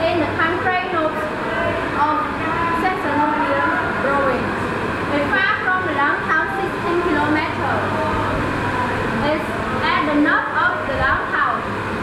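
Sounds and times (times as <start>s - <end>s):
woman speaking: 0.0s - 1.3s, 2.0s - 4.5s, 5.1s - 8.0s, 9.2s - 11.7s
steady low hum: 0.0s - 12.0s.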